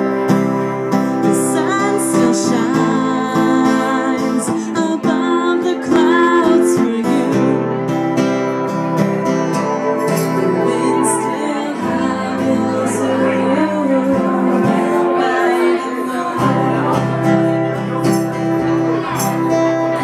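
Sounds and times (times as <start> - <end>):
acoustic guitar strumming: 0.0 - 20.0
woman singing: 1.1 - 8.1, 10.0 - 19.2.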